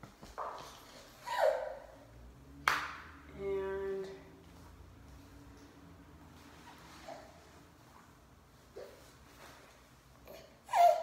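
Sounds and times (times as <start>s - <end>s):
toddler squealing: 1.2s - 1.8s, 10.7s - 11.0s.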